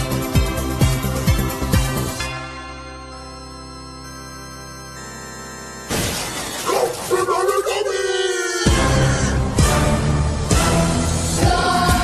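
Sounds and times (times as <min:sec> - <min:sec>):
keyboard exploding crash-bang: 0:05.9 - 0:06.7
warbling novelty character voice: 0:06.7 - 0:08.6.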